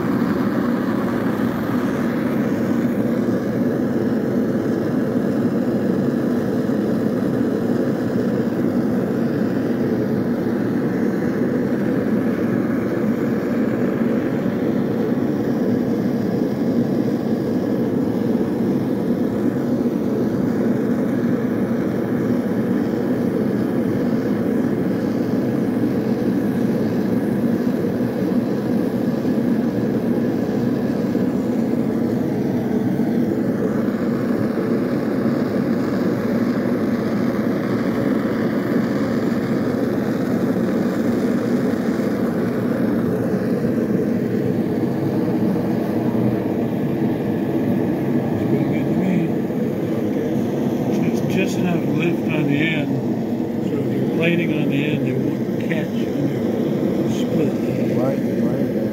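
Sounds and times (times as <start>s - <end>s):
gas burners rushing: 39.4s - 58.9s.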